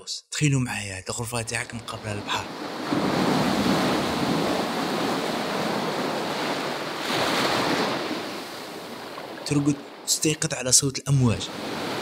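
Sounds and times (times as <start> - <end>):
ocean waves breaking on shore: 1.4 - 12.0.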